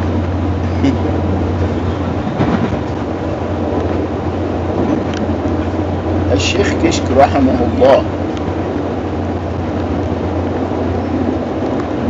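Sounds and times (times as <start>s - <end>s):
train carriage running noise: 0.0s - 12.0s.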